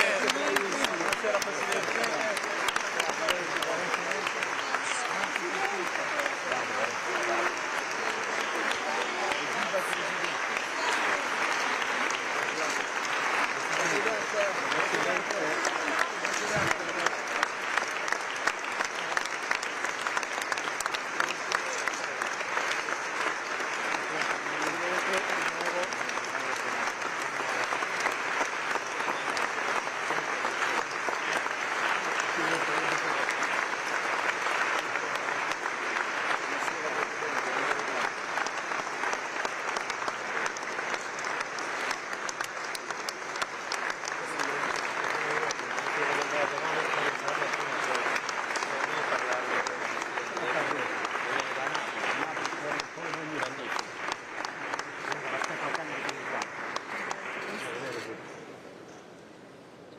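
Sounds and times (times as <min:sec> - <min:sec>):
crowd applauding: 0:00.0 - 0:58.5.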